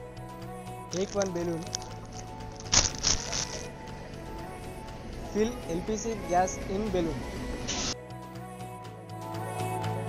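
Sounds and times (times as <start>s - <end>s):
background music: 0.0s - 10.0s
plastic packet rustling: 0.9s - 3.7s.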